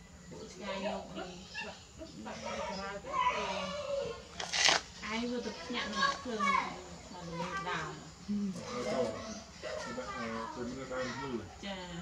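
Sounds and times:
children talking and playing: 0.0s - 12.0s.

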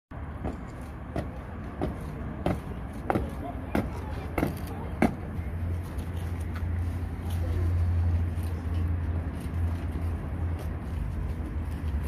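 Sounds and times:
boots stamping on stone: 0.4s - 5.2s.

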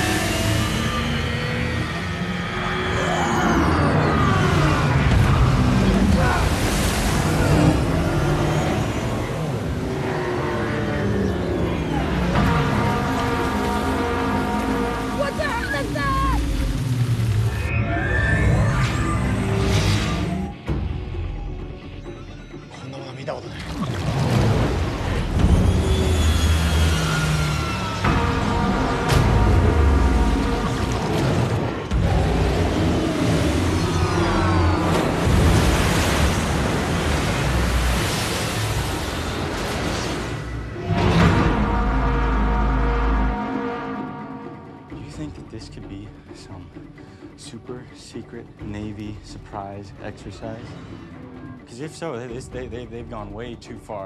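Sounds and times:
rushing water: 0.0s - 20.5s, 23.3s - 54.0s
dramatic music score: 0.0s - 54.0s
people shouting: 14.8s - 16.4s.

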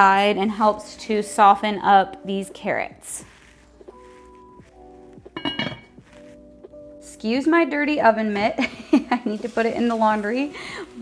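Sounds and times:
background music with held notes: 0.0s - 11.0s
pot lid clinking: 5.4s - 6.0s.

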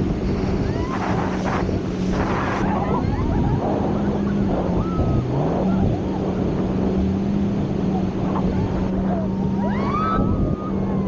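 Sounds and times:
rushing water: 0.0s - 11.0s
speedboat engine drone: 0.0s - 11.0s
wind: 0.0s - 11.0s.

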